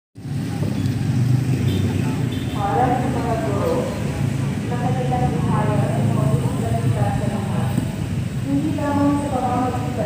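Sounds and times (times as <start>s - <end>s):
vehicle engine rumbling: 0.2s - 10.0s.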